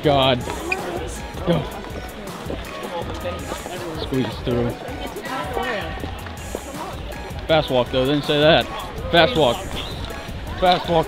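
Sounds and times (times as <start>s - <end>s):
music with low beat: 0.0s - 11.0s.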